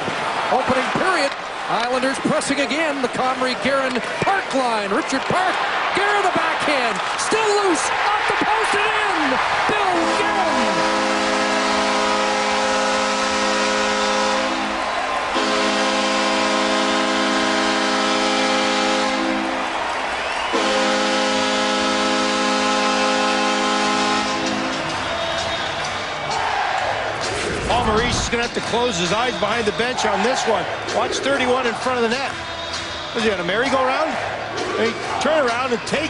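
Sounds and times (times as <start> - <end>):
crowd noise: 0.0 - 36.0
arena goal horn blasts: 9.7 - 19.7, 20.5 - 25.8.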